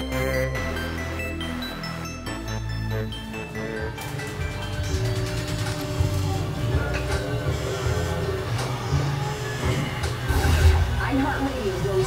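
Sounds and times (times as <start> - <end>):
music with heavy bass line: 0.0 - 5.7.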